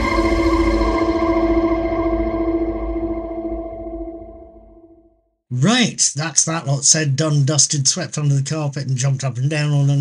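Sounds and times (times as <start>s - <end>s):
long held musical chord: 0.0s - 5.1s.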